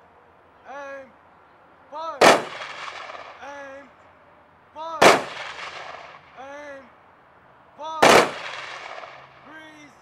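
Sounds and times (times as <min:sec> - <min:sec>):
loud sharp bangs: 0:02.2 - 0:03.7, 0:05.0 - 0:06.4, 0:08.0 - 0:09.5.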